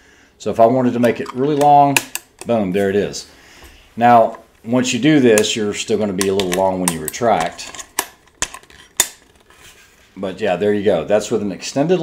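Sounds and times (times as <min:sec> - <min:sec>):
sharp metallic clicks: 0:01.0 - 0:02.6.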